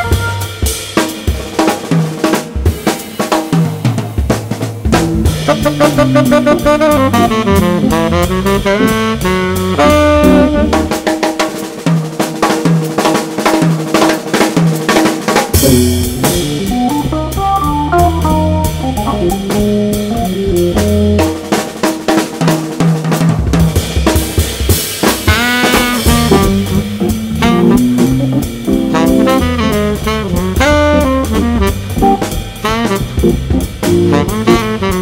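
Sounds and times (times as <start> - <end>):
saxophone line: 0.0 - 0.8, 5.4 - 11.0, 15.6 - 21.2, 25.3 - 35.0
low bass notes: 4.9 - 10.9, 15.6 - 21.3, 25.9 - 35.0.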